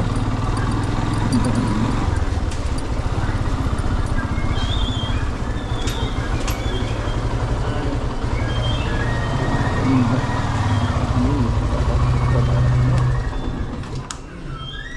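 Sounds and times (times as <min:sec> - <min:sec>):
motorcycle engine idling: 0:00.0 - 0:13.8.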